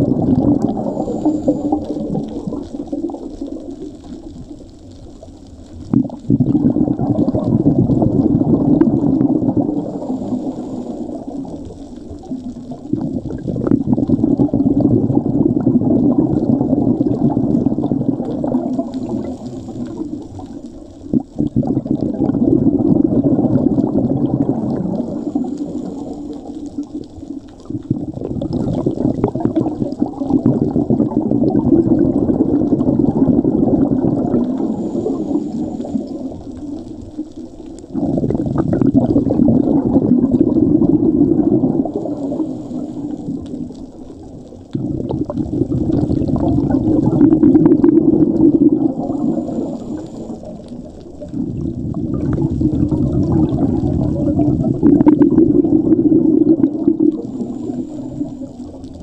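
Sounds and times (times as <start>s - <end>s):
exhaled bubbles underwater: 0.0s - 59.0s.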